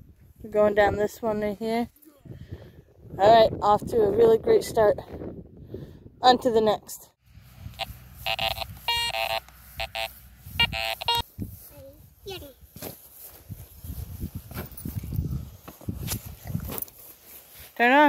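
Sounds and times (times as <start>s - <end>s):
metal detector beeps: 7.7s - 11.2s.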